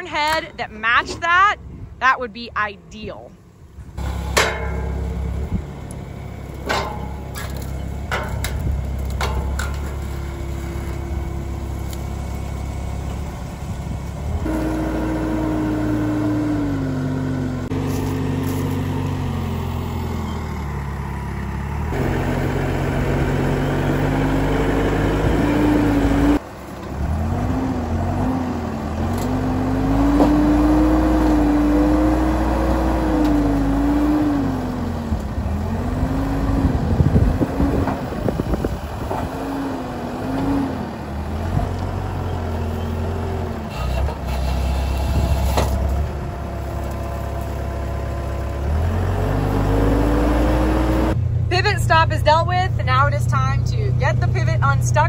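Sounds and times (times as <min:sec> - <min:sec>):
diesel engine revving: 0:03.0 - 0:55.0.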